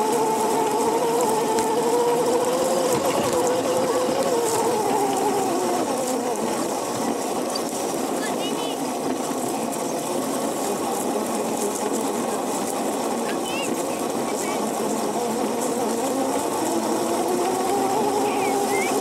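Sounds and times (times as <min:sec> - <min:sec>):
electric motor whining: 0:00.0 - 0:19.0
kart rumbling across grass: 0:00.0 - 0:19.0.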